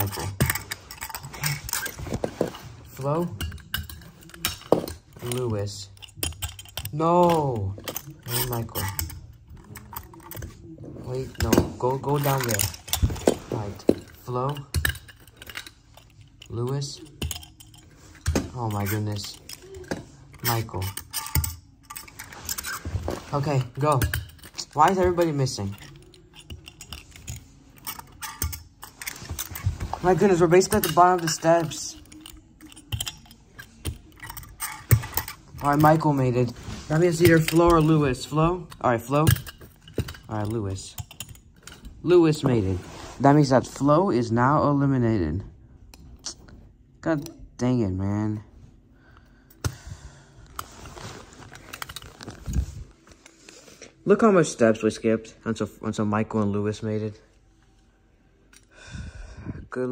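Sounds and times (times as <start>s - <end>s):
handling clicks and scrapes on carpet: 0.0s - 6.1s, 7.2s - 14.8s, 17.8s - 40.9s, 41.6s - 43.9s, 50.5s - 54.0s.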